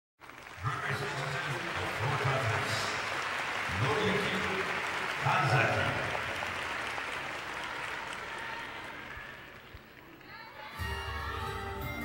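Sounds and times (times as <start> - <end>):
audience applauding: 0.2 - 11.0.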